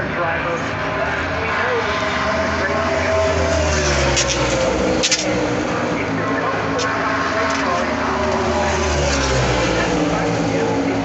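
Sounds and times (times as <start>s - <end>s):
race car engine passing by: 0.0s - 11.0s.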